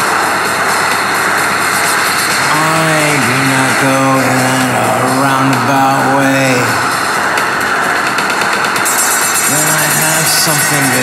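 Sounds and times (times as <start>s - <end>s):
electronic synthpop: 0.0s - 11.0s.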